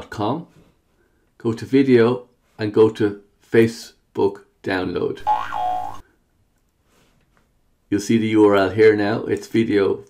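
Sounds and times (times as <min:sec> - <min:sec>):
cartoon boing sound effect: 0:05.2 - 0:06.0.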